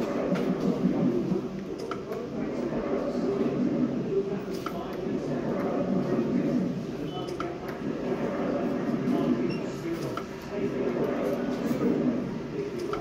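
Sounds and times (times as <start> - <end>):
indistinct voices murmuring: 0.0 - 13.0.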